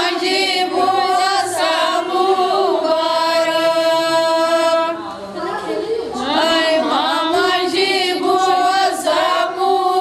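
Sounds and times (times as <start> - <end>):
women singing together: 0.0 - 10.0.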